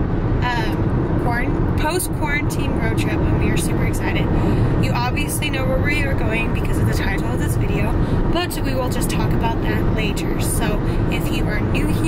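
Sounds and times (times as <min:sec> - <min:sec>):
car cabin road rumble: 0:00.0 - 0:12.0
woman talking: 0:00.4 - 0:12.0.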